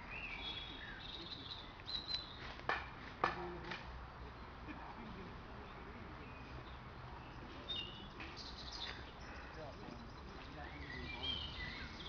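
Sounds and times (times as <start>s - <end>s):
small birds chirping: 0.0s - 2.7s, 4.2s - 12.0s.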